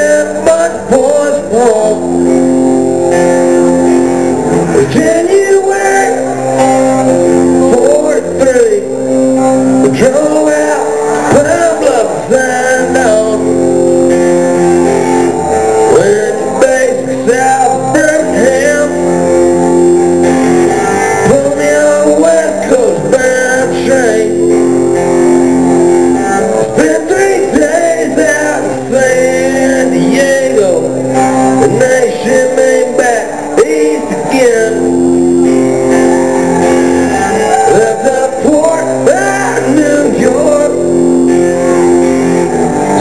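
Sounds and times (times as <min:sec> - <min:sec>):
electric guitar chords: 0:00.0 - 0:43.0
rock band playing live: 0:00.0 - 0:43.0.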